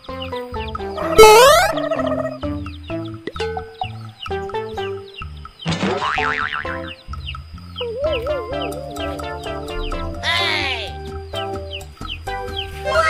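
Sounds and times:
bouncy children's music: 0.0s - 13.0s
cartoon wobbling glide effect: 1.0s - 2.2s, 7.8s - 11.0s.

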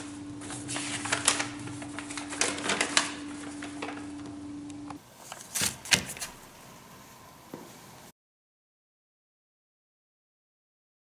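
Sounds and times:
paper rustling and crackling: 0.0s - 4.2s, 5.2s - 6.5s
steady low hum: 0.0s - 8.1s.

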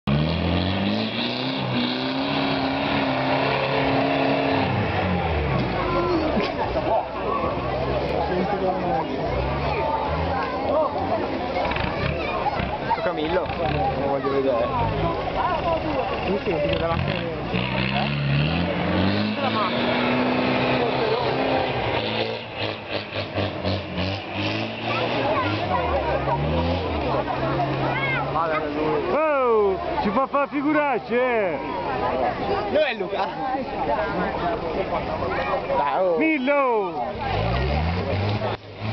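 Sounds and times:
engine revving hard: 0.1s - 6.2s, 16.4s - 28.7s, 37.1s - 38.9s.

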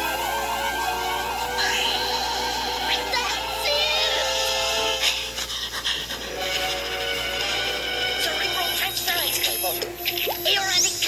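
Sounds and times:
cartoon music from tv speaker: 0.0s - 11.0s.

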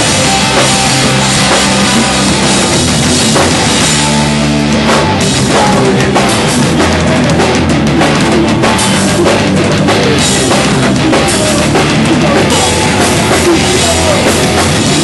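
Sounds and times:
drum kit: 0.0s - 15.0s
electric guitars: 0.0s - 15.0s.

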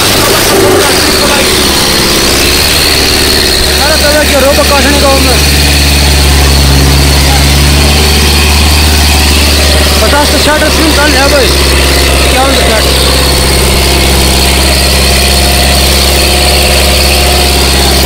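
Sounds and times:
tractor diesel engine under load: 0.0s - 18.0s
voices shouting: 0.7s - 18.0s.

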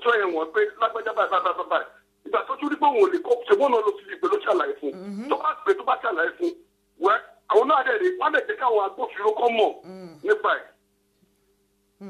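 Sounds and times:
person talking over phone line: 0.0s - 1.8s, 2.4s - 6.5s
faint steady hum: 0.0s - 12.0s.

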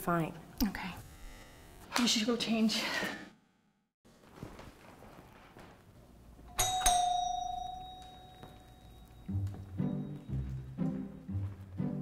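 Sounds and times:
doorbell chime: 6.5s - 10.6s.

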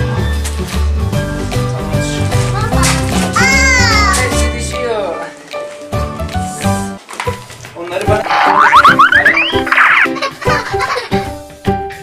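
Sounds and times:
background music: 0.0s - 12.0s
rising trill: 8.2s - 10.1s
upward-sliding cartoon tones: 8.2s - 10.2s.

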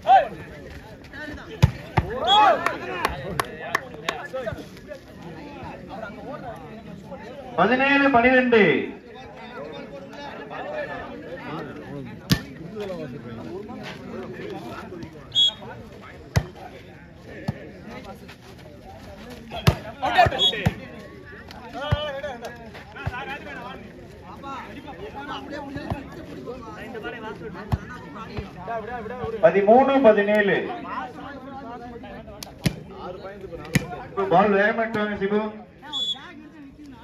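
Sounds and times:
people shouting: 2.0s - 3.0s
referee's whistle blast: 15.3s - 15.7s, 20.3s - 20.6s, 35.9s - 36.2s
volleyball being hit: 33.6s - 34.0s.

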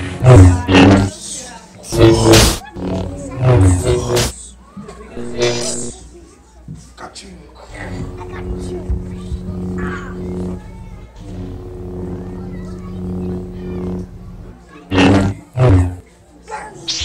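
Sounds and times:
lightsaber hum: 0.0s - 1.2s, 1.8s - 4.4s, 5.2s - 6.0s, 7.7s - 16.0s
loud sudden bursts: 0.0s - 1.2s, 1.9s - 4.4s, 5.2s - 6.0s, 7.7s - 16.0s.

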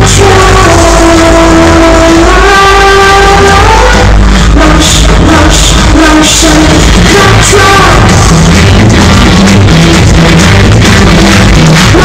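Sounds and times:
low bass rumble: 0.0s - 12.0s
overloaded electronic pop music: 0.0s - 12.0s.

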